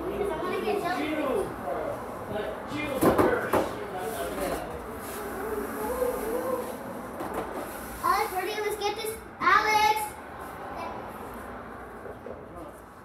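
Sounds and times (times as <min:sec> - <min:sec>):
children's voices: 0:00.0 - 0:01.4, 0:08.0 - 0:11.1.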